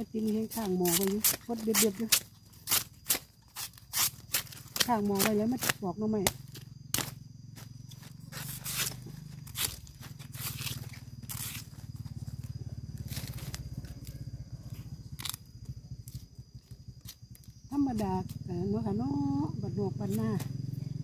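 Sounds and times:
knife scraping and tearing husks: 0:00.2 - 0:07.2, 0:08.3 - 0:11.8, 0:13.0 - 0:15.4.

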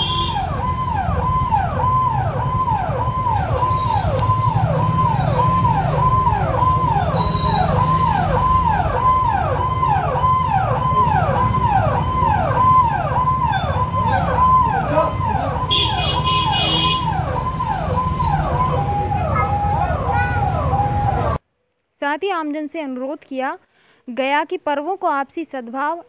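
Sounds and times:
electronic police siren: 0:00.0 - 0:21.4
motorcycle engines droning: 0:00.5 - 0:21.4.

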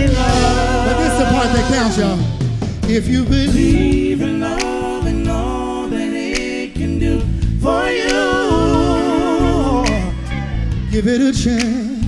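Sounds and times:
singers holding harmony chord: 0:00.0 - 0:02.7, 0:03.5 - 0:10.8
bass: 0:00.0 - 0:12.0.

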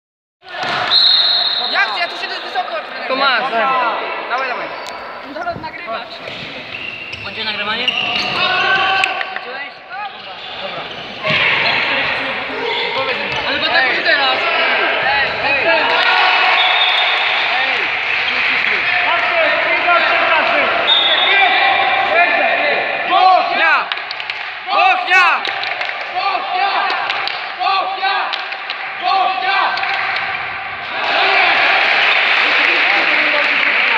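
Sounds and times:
long high whistle: 0:00.9 - 0:01.9, 0:20.9 - 0:21.5
ball bouncing on hall floor: 0:05.5 - 0:07.4, 0:13.2 - 0:13.7.

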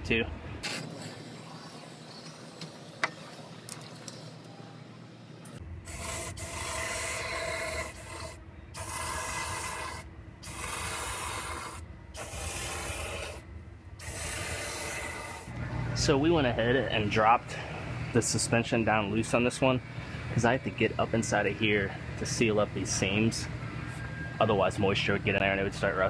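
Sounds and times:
hissing spray bursts: 0:05.9 - 0:13.4, 0:14.0 - 0:15.5.

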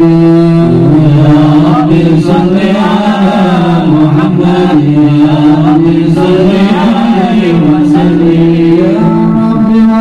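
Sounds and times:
man chanting devotional song: 0:00.0 - 0:10.0.

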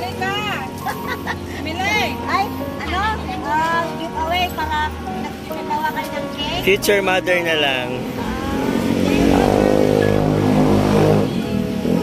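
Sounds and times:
motorcycle passing by: 0:00.0 - 0:12.0.

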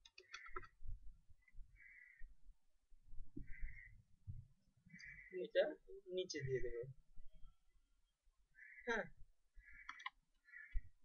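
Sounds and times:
computer mouse and keyboard clicking: 0:00.0 - 0:00.8, 0:09.8 - 0:10.2.

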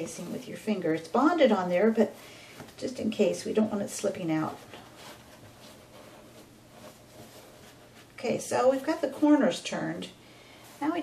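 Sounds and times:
fabric rustling: 0:00.0 - 0:09.5
soft brushes: 0:00.0 - 0:11.0.

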